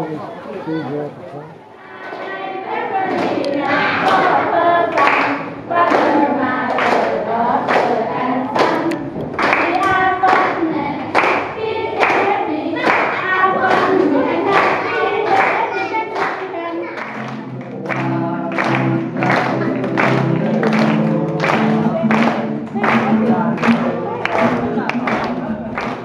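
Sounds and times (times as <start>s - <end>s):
children singing together: 1.7s - 26.0s
hands clapping a steady beat: 2.0s - 2.4s, 3.0s - 26.0s.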